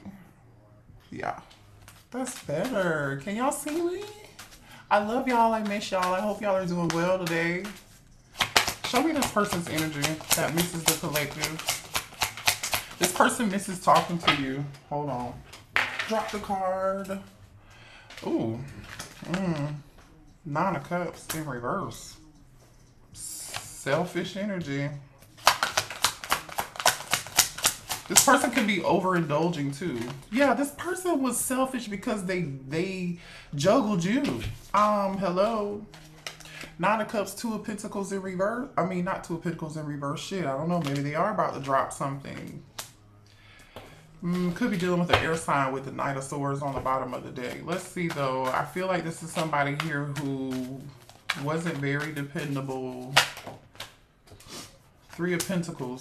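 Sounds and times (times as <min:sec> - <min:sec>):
cards being shuffled: 0:01.5 - 0:17.4, 0:18.1 - 0:20.1, 0:20.7 - 0:32.2, 0:33.8 - 0:37.2, 0:43.6 - 0:56.0.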